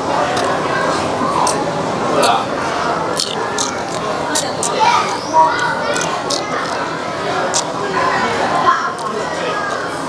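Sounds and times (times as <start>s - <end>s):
children's voices: 0.0s - 10.0s
restaurant diners' voices: 0.0s - 10.0s
mouth clicks and smacking: 0.2s - 0.6s, 1.3s - 8.0s, 8.9s - 10.0s.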